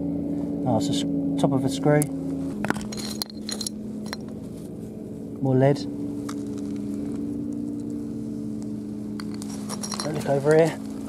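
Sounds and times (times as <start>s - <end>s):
low engine hum: 0.0s - 11.0s
pottery sherds and stones clinking: 2.5s - 4.4s, 9.2s - 11.0s.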